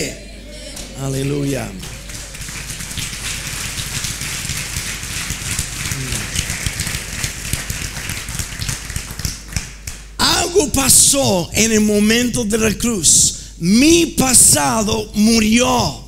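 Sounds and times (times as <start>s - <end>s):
congregation applauding: 0.0s - 10.1s.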